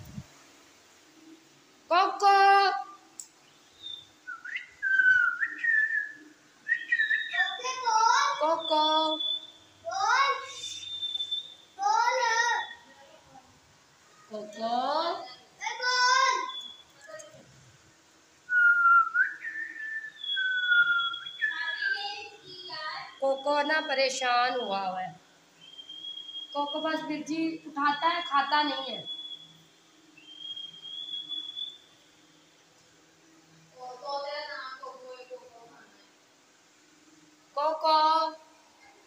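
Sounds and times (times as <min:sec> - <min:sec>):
higher steady whistle: 0:03.4 - 0:12.9, 0:18.4 - 0:25.0, 0:25.6 - 0:32.5
lower sliding whistle: 0:10.5 - 0:11.6, 0:18.5 - 0:21.9, 0:25.6 - 0:27.0, 0:30.2 - 0:31.9
person whistling: 0:18.5 - 0:21.2.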